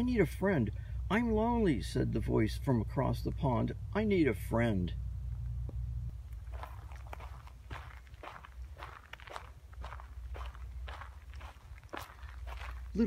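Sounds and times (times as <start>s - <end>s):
low steady rumble: 0.0s - 13.0s
footsteps on pine needles: 6.2s - 13.0s.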